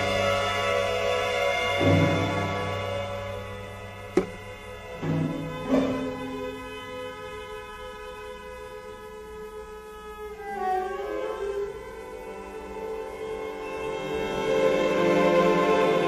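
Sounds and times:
string orchestra playing: 0:00.0 - 0:16.0.

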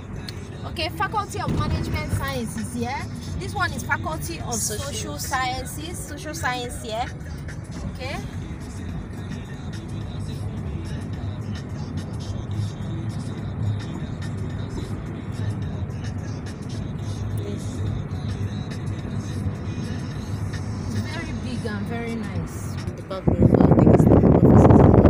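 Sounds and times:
background music: 0:00.0 - 0:24.6
car road and engine rumble: 0:00.0 - 0:25.0.

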